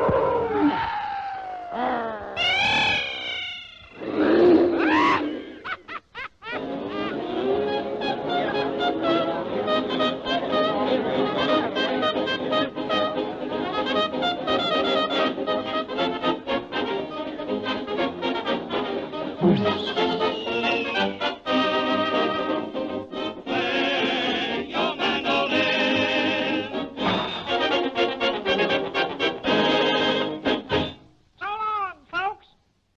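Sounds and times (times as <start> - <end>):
cartoon voice calling: 0.3 - 5.8, 31.4 - 32.6
lively brass band tune: 6.6 - 31.0.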